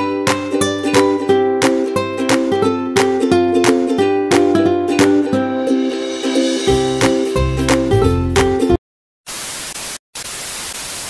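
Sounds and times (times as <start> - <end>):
tv static hiss: 9.3 - 11.0.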